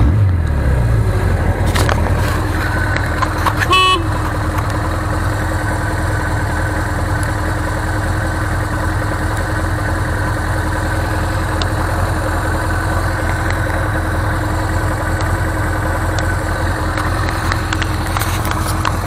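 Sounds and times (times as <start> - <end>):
motorcycle engine idling: 0.5 - 19.0.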